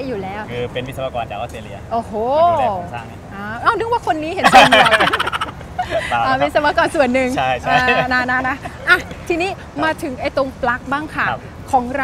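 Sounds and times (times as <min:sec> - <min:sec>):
people speaking: 0:01.4 - 0:12.0
woman and man laughing: 0:04.4 - 0:06.4, 0:07.6 - 0:09.2.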